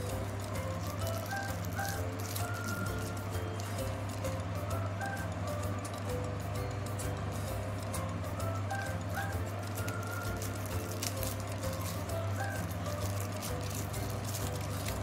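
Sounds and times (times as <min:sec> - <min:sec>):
plastic candy wrappers crinkling: 0:00.0 - 0:06.0, 0:08.4 - 0:15.0
light simple melody: 0:00.0 - 0:15.0.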